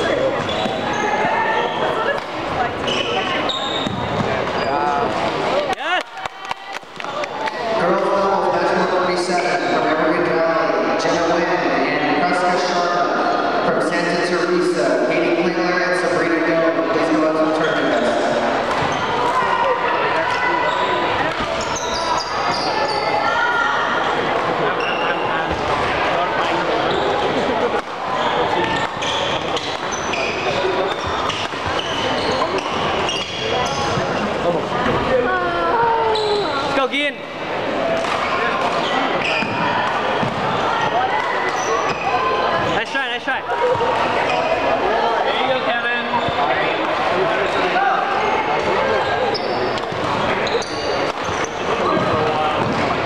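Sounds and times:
crowd babble in echoing hall: 0.0s - 53.0s
thuds and knocks of play: 51.9s - 53.0s.

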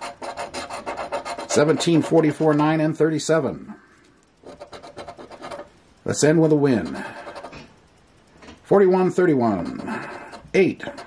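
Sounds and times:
coin scraping scratch-off ticket: 0.0s - 2.7s, 4.4s - 5.7s, 6.6s - 7.7s, 9.5s - 11.0s.

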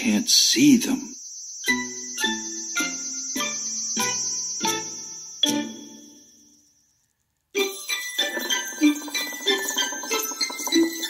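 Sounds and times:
high-pitched insect-like trill: 0.0s - 11.0s.

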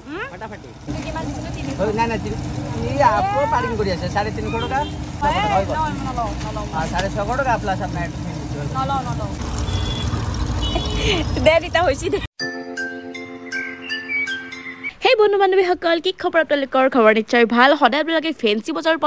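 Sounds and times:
people talking: 0.1s - 9.4s, 11.2s - 12.3s.

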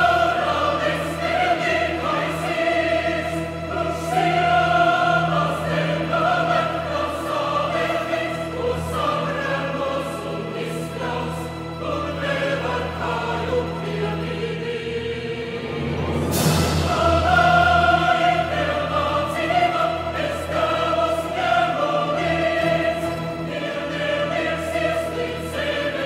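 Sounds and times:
mixed choir singing: 0.0s - 26.0s
string orchestra: 0.0s - 26.0s.

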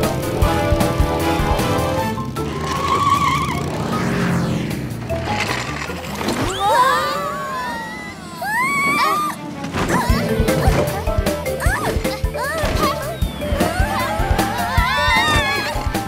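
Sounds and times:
cartoon background music: 0.0s - 4.0s, 8.5s - 16.0s
motor vehicle sound effects: 0.0s - 8.1s, 9.3s - 16.0s.

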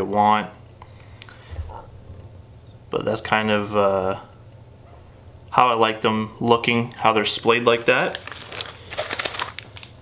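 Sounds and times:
material crinkling with small ticks: 6.9s - 10.0s.

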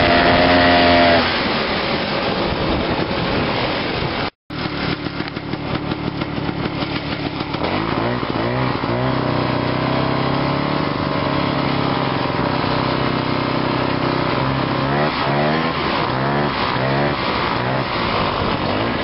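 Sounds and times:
snowmobile two-stroke engine: 0.0s - 3.3s, 4.5s - 19.0s.

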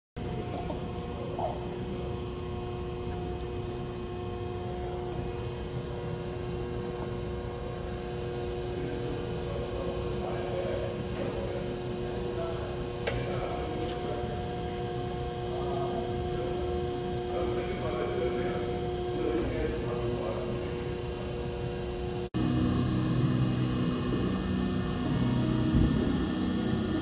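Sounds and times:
industrial machinery humming: 0.2s - 27.0s.

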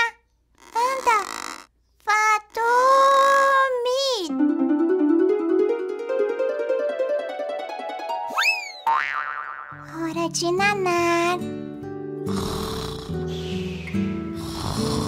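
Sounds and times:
rising whistle effect: 8.3s - 8.9s
wobbly boing effect: 8.8s - 9.8s
children's background music: 9.8s - 12.2s, 13.2s - 14.8s
comic snoring effect: 12.2s - 15.0s.

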